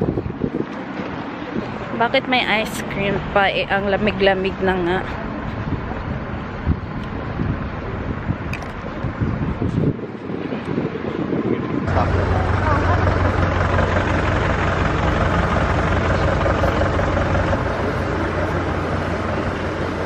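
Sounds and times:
indistinct voices of passers-by: 0:00.0 - 0:20.0
low traffic hum: 0:00.0 - 0:20.0.

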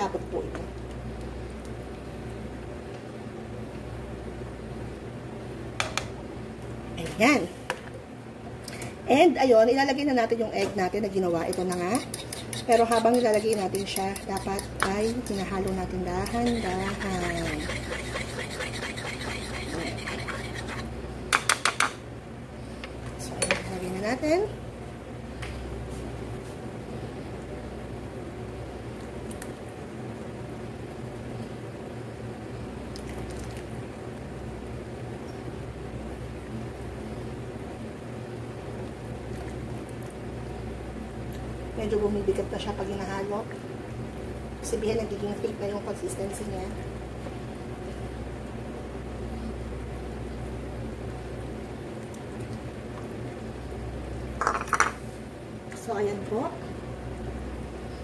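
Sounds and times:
steady low hum: 0:00.0 - 0:58.0
utensil clicking against pan: 0:11.5 - 0:16.4
knocks and scrapes against pan: 0:11.5 - 0:22.0.

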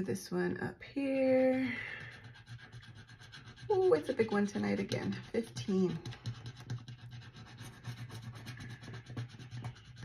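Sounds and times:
pen scratching on paper: 0:01.9 - 0:10.0.

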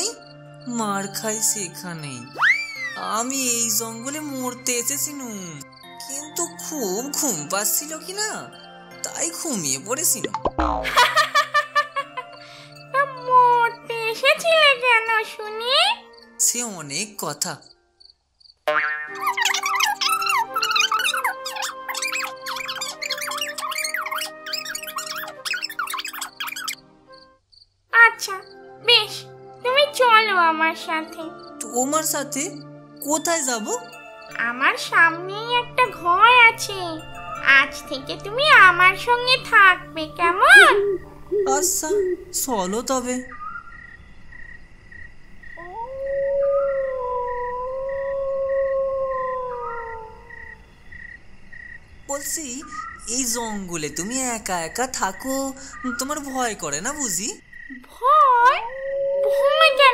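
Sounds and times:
insect chirping: 0:00.0 - 0:10.5, 0:11.1 - 0:28.8, 0:31.3 - 0:59.9
squeaky sliding pitch effects: 0:19.1 - 0:26.8
animal howl: 0:19.4 - 0:25.8, 0:40.4 - 0:42.3, 0:45.6 - 0:50.6, 0:58.4 - 0:59.9.

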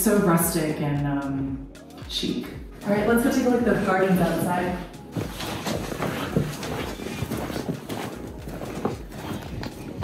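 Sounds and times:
footsteps on hard ground: 0:04.3 - 0:10.0.

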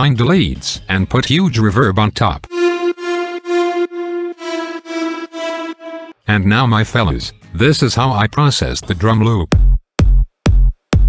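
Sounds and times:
buzzy synthesizer lead notes: 0:02.5 - 0:06.4.

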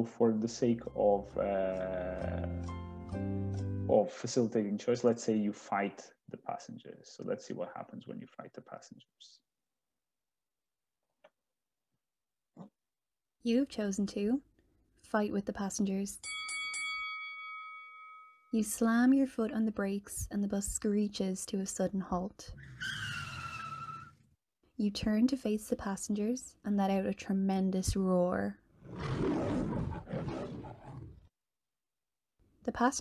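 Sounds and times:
bell chime strikes: 0:16.2 - 0:18.4
ringing bell chord: 0:16.2 - 0:18.5
tremendous roar: 0:28.8 - 0:31.3.

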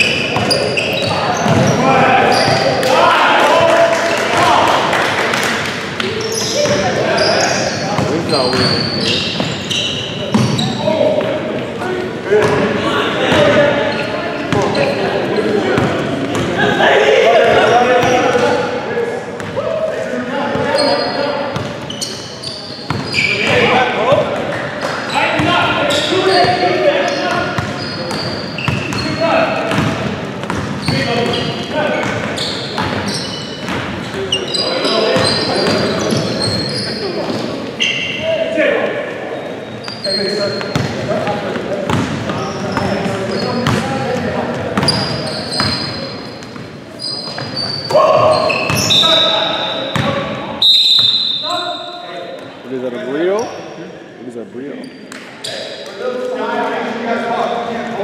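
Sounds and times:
sneaker squeaks: 0:00.0 - 0:03.0, 0:06.0 - 0:16.7, 0:17.4 - 0:18.6, 0:20.4 - 0:38.6, 0:39.3 - 0:41.2, 0:41.9 - 0:53.8, 0:54.7 - 0:55.9
players shouting: 0:00.0 - 0:09.8.

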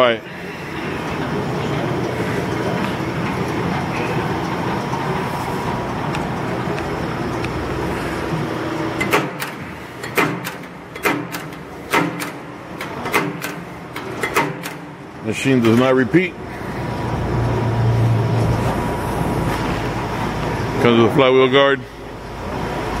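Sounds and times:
punch press motor hum: 0:01.0 - 0:15.9
sharp metallic clunks: 0:09.0 - 0:15.0.

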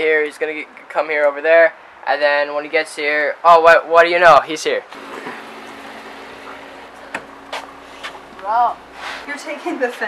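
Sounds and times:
car engine idling: 0:04.9 - 0:10.0.

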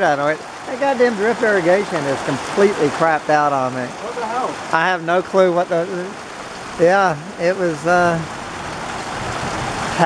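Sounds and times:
heavy rain pouring: 0:00.0 - 0:10.0.

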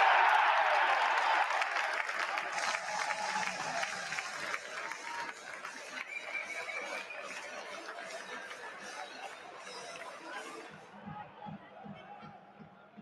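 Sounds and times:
stadium crowd cheering and applauding: 0:00.0 - 0:13.0.

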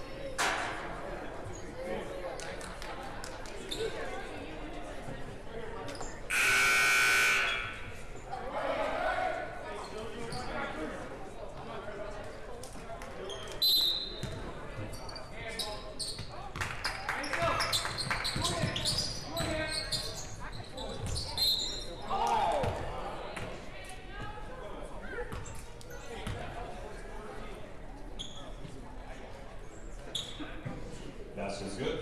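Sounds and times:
sneaker squeaks: 0:13.3 - 0:16.5, 0:17.3 - 0:22.1, 0:25.3 - 0:26.4, 0:28.2 - 0:28.7, 0:30.1 - 0:30.8.

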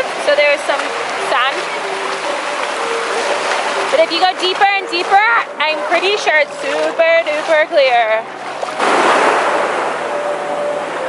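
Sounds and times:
sea wave breaking: 0:00.0 - 0:11.0.

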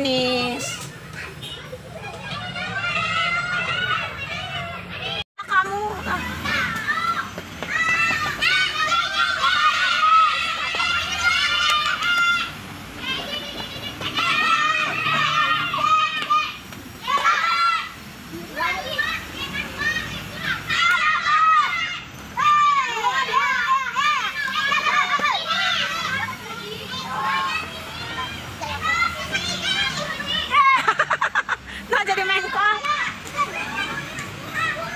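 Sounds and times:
children shouting: 0:00.3 - 0:31.5, 0:32.2 - 0:34.9.

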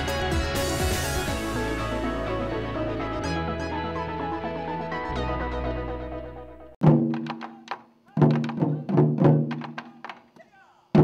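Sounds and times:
taiko drums booming: 0:06.8 - 0:09.9.

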